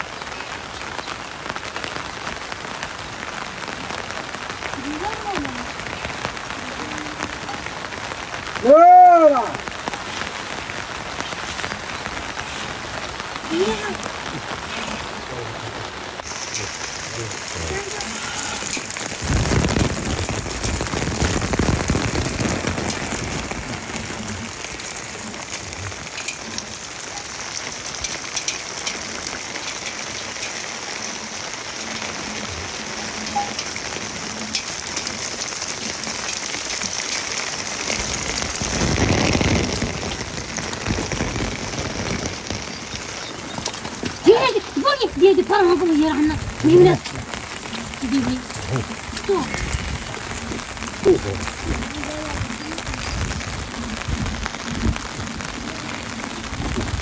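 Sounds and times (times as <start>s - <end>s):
steady rain falling: 0.0s - 57.0s.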